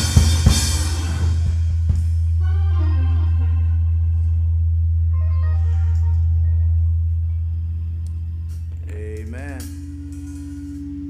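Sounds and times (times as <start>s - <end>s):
organ chords: 0.0s - 11.0s
held low bass note: 2.2s - 11.0s.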